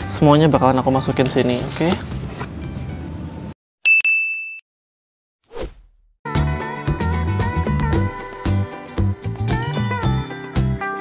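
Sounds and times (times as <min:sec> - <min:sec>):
bright bell-like ding: 0:03.9 - 0:04.6.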